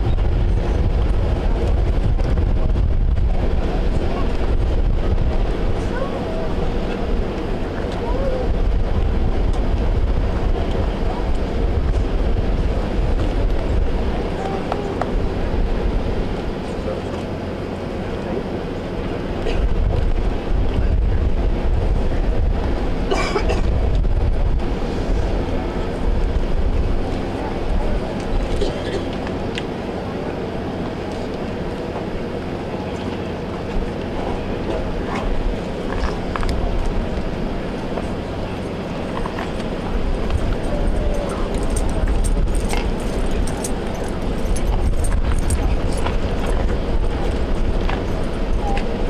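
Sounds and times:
murmur of outdoor crowd: 0.0s - 49.0s
wind buffeting microphone: 0.0s - 49.0s.

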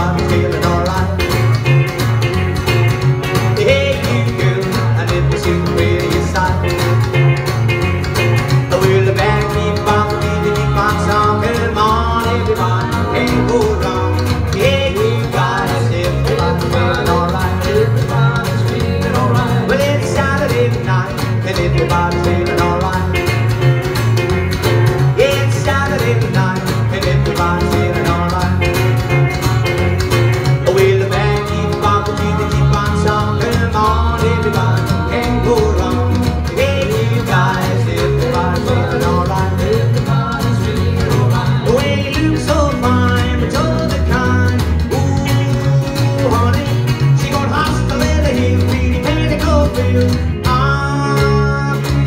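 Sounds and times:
electric guitar sliding lead lines: 0.0s - 52.0s
plucked upright double bass: 0.0s - 52.0s
strummed acoustic guitar: 0.0s - 52.0s.

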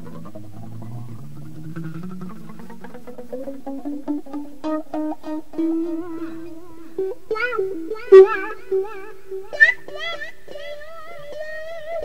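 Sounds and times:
guitar notes with vibrato: 0.0s - 12.0s
picked guitar notes: 0.0s - 12.0s.

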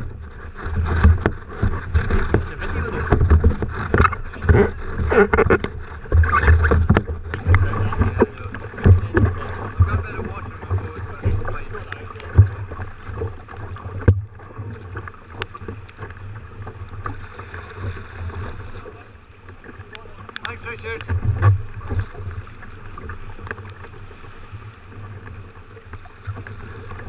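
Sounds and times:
water slapping against kayak hull: 0.0s - 27.0s
wind rumble on microphone: 0.0s - 27.0s.

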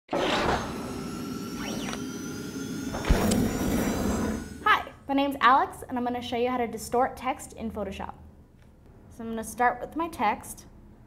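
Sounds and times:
sustained synthetic tones: 0.7s - 5.0s.

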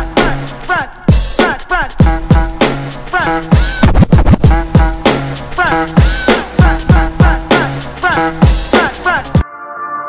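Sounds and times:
bass drum beat: 0.0s - 9.4s
turntable scratching: 0.0s - 9.4s.

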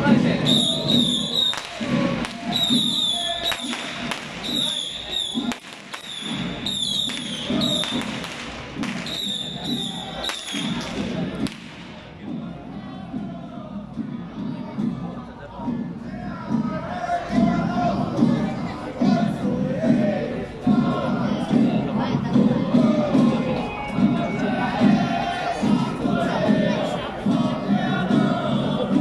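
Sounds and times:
crowd noise: 0.0s - 29.0s
procession music with low beats: 0.0s - 29.0s
shrill whistle notes: 0.4s - 1.8s, 2.4s - 3.8s, 4.4s - 8.0s, 9.0s - 10.9s.

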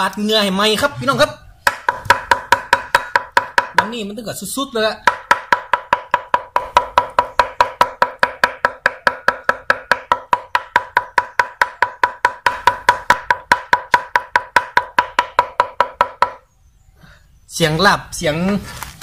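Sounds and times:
cleaver mincing on wooden block: 1.7s - 3.9s, 5.0s - 16.4s.

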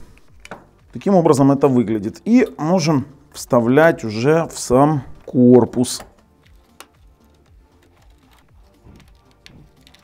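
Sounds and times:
quiet background music: 0.0s - 10.0s
hardware clicks and taps: 0.1s - 0.9s, 5.9s - 10.0s.

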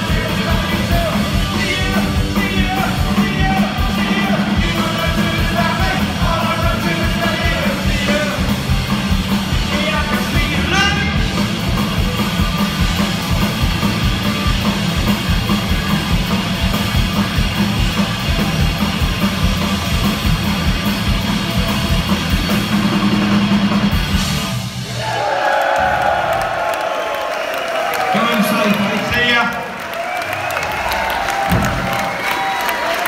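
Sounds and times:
crowd cheering: 0.0s - 8.6s, 24.5s - 33.0s
punk rock band playing: 0.0s - 25.2s.

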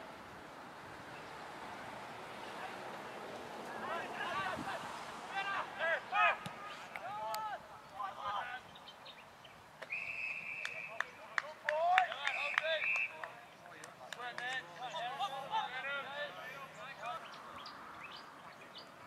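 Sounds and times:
players shouting: 3.6s - 8.7s, 14.2s - 17.3s
umpire's whistle blast: 9.9s - 11.0s.

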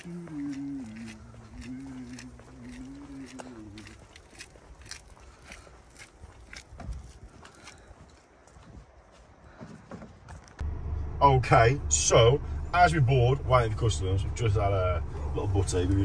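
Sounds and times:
person humming a tune: 0.0s - 3.9s
footsteps on brick paving: 0.0s - 10.6s.

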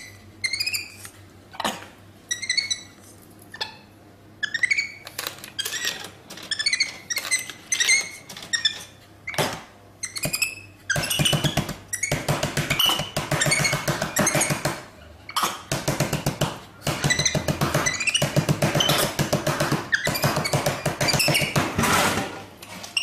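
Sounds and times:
monkey squeaky chirps: 2.3s - 3.8s, 4.4s - 5.0s.

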